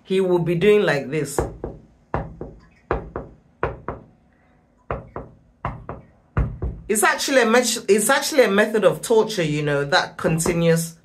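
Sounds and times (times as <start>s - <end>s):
double knocks on hard surface: 1.4s - 4.1s, 4.9s - 6.9s.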